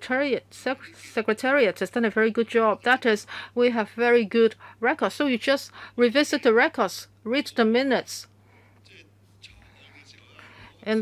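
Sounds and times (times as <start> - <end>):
low steady hum: 0.0 - 11.0
faint breathy noise: 3.2 - 3.6, 5.7 - 6.0, 8.4 - 10.8
man speaking: 8.8 - 11.0.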